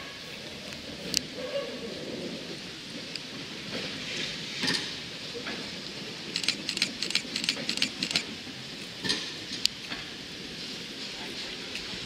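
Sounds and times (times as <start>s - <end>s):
tram running noise: 0.0s - 12.0s
metallic wheel clicks on track: 6.3s - 8.3s.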